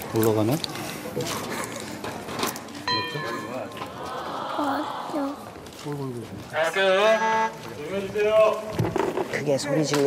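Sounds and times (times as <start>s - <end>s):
gliding voice sounds: 3.7s - 5.8s.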